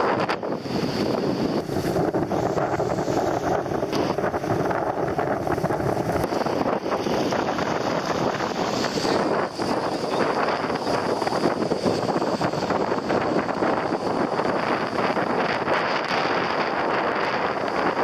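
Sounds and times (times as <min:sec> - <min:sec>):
sea surf washing onto beach: 0:00.0 - 0:18.0
wind buffeting microphone: 0:00.0 - 0:18.0.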